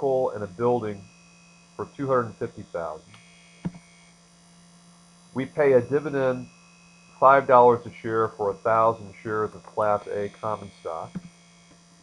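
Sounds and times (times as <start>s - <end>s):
electrical mains hum: 0.0s - 12.0s
sharp click: 11.1s - 11.4s.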